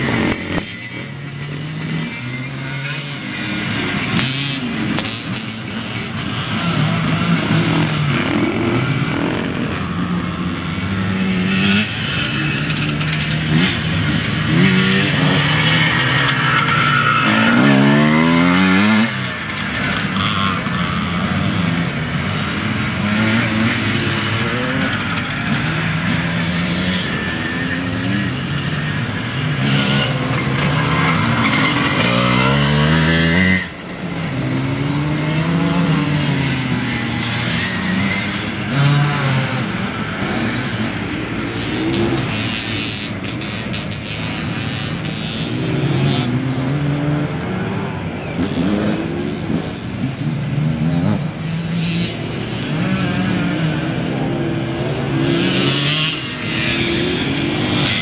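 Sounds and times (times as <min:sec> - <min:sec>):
motorcycle engines revving: 0:00.0 - 0:58.0.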